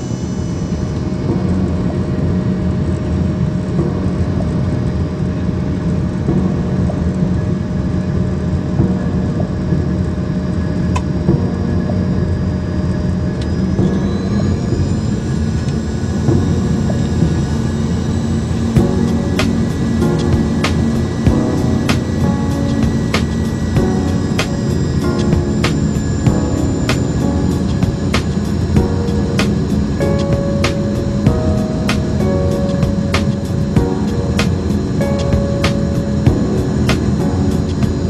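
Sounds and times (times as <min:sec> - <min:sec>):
jet engine cabin hum: 0:00.0 - 0:38.0
thin whining tones: 0:00.0 - 0:38.0.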